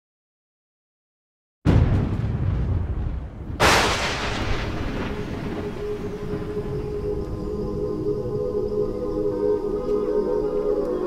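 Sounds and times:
sharp crash: 0:01.7 - 0:06.6
deep boom with rumble: 0:01.7 - 0:06.9
soft ambient music: 0:04.9 - 0:11.0.

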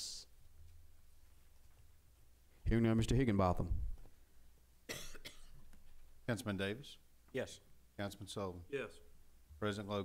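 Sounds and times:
room hum: 0:00.0 - 0:10.0
person coughing: 0:04.9 - 0:05.7.

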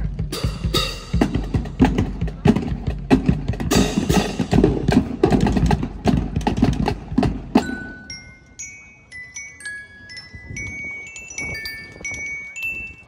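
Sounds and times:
bass drums: 0:00.0 - 0:07.8
snare drums: 0:00.0 - 0:07.8.

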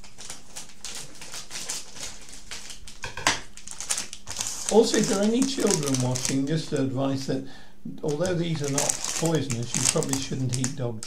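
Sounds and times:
plastic packet rustling and crinkling: 0:00.0 - 0:07.4, 0:08.0 - 0:11.0.

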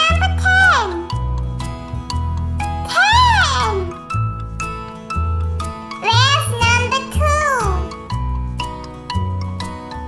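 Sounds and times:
children's song backing music: 0:00.0 - 0:10.0.

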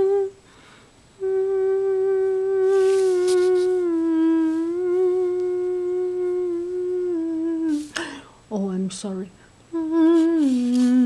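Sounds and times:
woman humming: 0:00.0 - 0:00.4, 0:01.2 - 0:08.3, 0:09.7 - 0:11.0.

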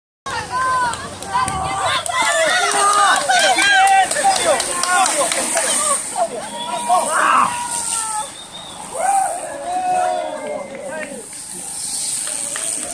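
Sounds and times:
spectators shouting encouragement: 0:00.3 - 0:11.7.

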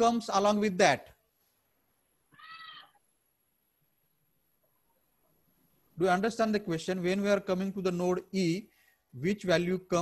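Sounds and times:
high-pitched animal call: 0:02.3 - 0:03.0.

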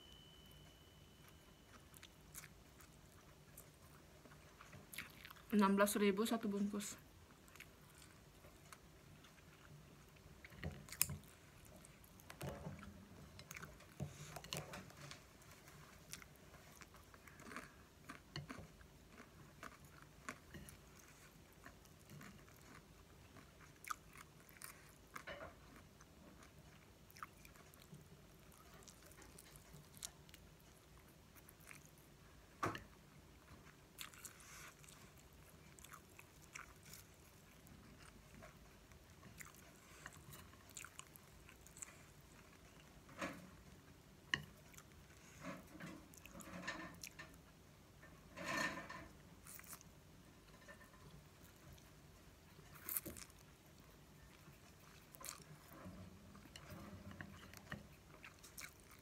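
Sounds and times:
person chewing and biting food: 0:39.3 - 0:42.6, 0:52.6 - 0:55.7.

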